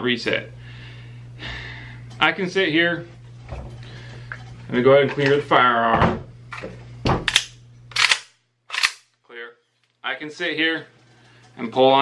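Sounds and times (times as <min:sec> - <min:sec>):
rifle action clacking: 0:07.3 - 0:09.1.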